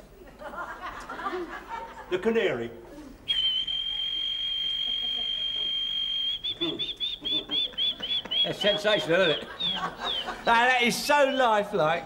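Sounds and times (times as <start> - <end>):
man whistling bird chirps: 3.3 - 10.4.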